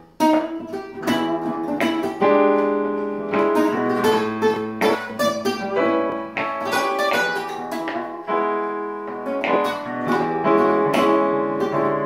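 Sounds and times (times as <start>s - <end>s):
classical guitar playing blues: 0.0s - 12.0s
digital piano: 0.0s - 12.0s.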